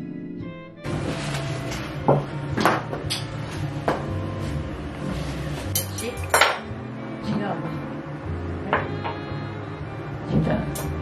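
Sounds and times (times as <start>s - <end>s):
metal cutlery clinking: 5.7s - 6.7s.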